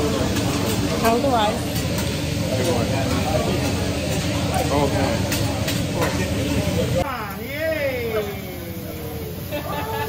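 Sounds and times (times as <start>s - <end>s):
food sizzling on a griddle: 0.0s - 10.0s.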